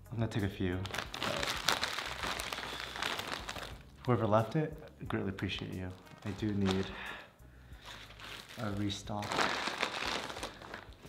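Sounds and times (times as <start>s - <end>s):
plastic bag crinkling: 0.8s - 4.0s, 5.8s - 7.2s, 7.8s - 11.0s.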